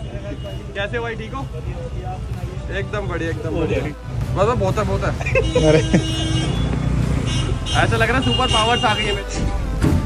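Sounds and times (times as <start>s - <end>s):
rumble of vehicle engines: 0.0s - 10.0s
vehicle horn: 5.4s - 9.4s.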